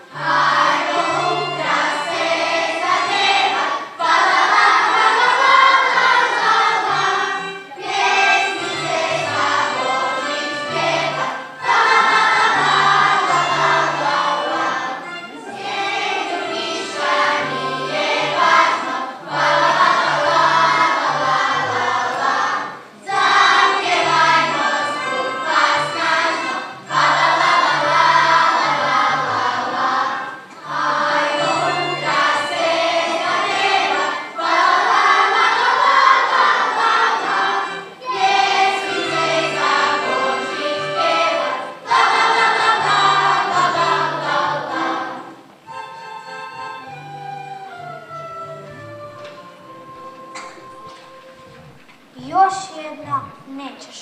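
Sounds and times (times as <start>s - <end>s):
children's choir singing: 0.0s - 51.8s
instrumental accompaniment with bass line: 0.0s - 52.1s.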